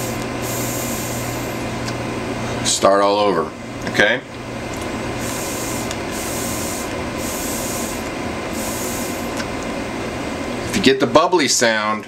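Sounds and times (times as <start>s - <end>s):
e-cig coil bubbling and sizzling: 0.0s - 1.8s, 5.1s - 9.5s.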